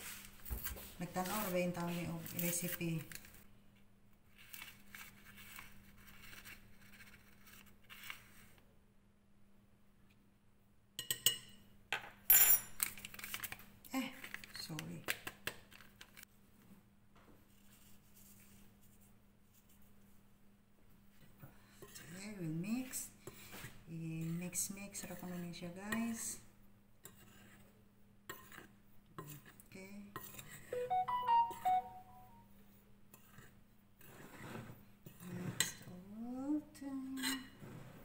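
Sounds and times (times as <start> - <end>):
paper packet rustling: 12.8 - 14.6.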